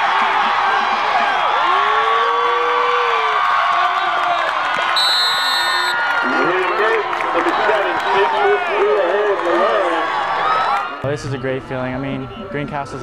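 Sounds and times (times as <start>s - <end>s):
crowd cheering and yelling: 0.0s - 13.0s
referee's whistle: 4.9s - 6.1s.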